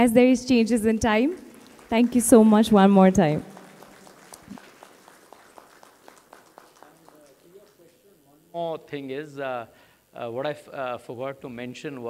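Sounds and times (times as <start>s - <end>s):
faint scattered applause: 1.0s - 8.4s.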